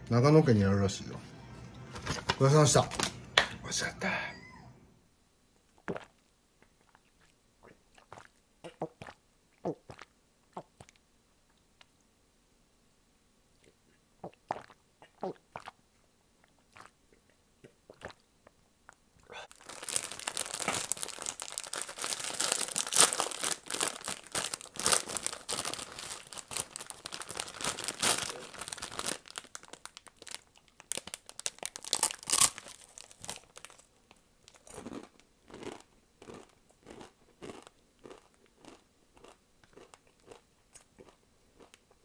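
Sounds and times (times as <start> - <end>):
plastic crinkling and tearing: 19.5 - 33.9
crunchy biting and chewing: 31.4 - 33.8, 34.5 - 41.8.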